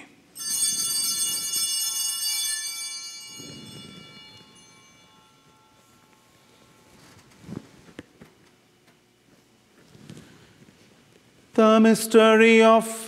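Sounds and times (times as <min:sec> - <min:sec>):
altar bells ringing: 0:00.3 - 0:07.1.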